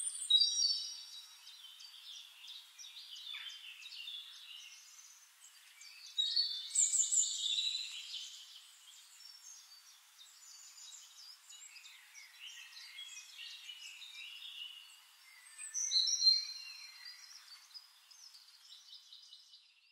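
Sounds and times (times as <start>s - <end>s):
small birds chirping and singing: 0.0s - 19.9s.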